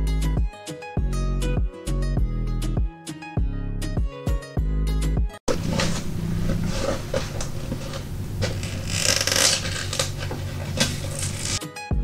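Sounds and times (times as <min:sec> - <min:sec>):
plastic film crinkling: 0:05.5 - 0:11.6.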